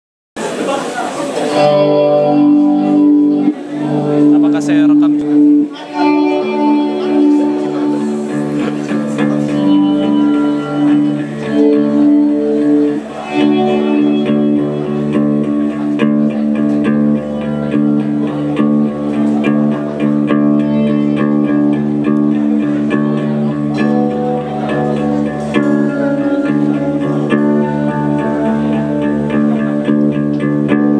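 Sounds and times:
electric bass guitar: 1.3 - 30.9
electric guitars ringing chords: 1.3 - 30.9.

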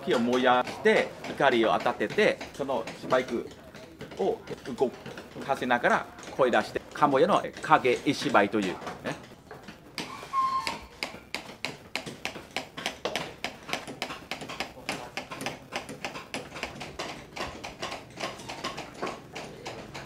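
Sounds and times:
hammers tapping on chisels: 0.0 - 20.0.

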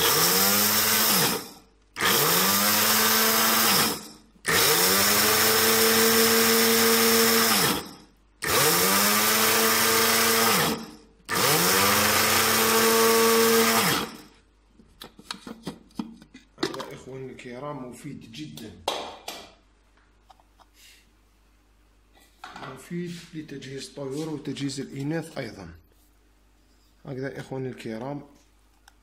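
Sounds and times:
electric spice grinder motor whining: 0.0 - 14.3.

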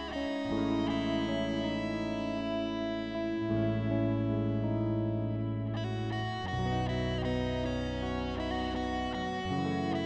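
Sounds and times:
guitar with effects: 0.0 - 10.0.

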